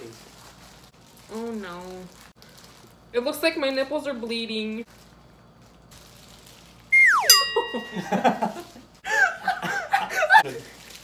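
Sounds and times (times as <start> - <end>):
high whistle sliding down in pitch: 6.9 - 7.8.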